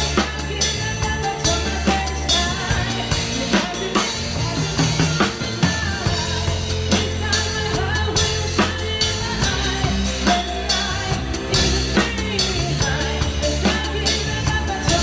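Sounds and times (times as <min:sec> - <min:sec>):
drum kit and cymbals: 0:00.0 - 0:15.0
recorded song with singer: 0:00.0 - 0:15.0.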